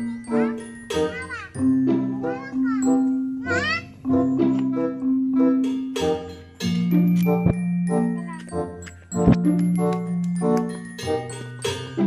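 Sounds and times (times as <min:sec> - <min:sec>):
bright jingly melody: 0:00.0 - 0:12.0.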